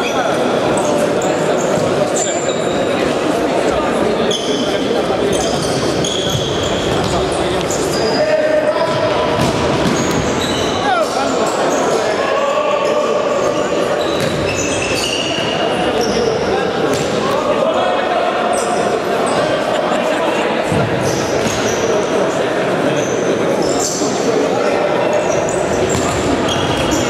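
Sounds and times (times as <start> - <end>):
trainers squeaking on court: 0.0 - 3.1, 4.2 - 17.1, 21.0 - 22.2, 22.8 - 27.0.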